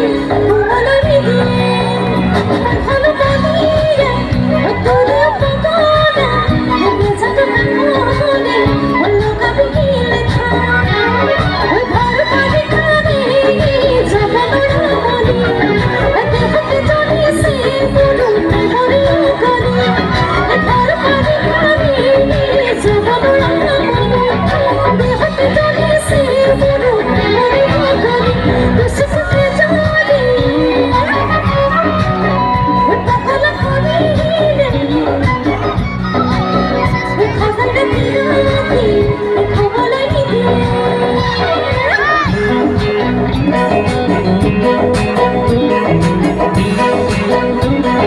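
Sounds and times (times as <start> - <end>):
bass line: 0.0 - 48.0
live band accompaniment: 0.0 - 48.0
woman singing into microphone: 0.0 - 48.0.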